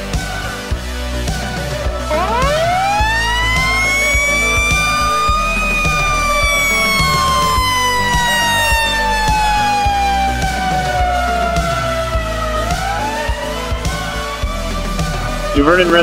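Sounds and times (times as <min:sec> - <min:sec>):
background music: 0:00.0 - 0:16.0
mechanical siren winding: 0:02.1 - 0:10.8.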